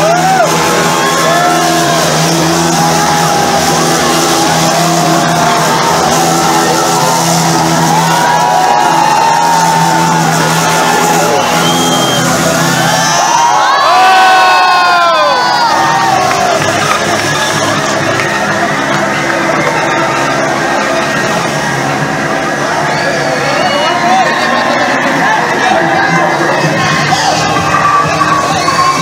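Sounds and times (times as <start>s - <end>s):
crowd cheering and whooping: 0.0s - 29.0s.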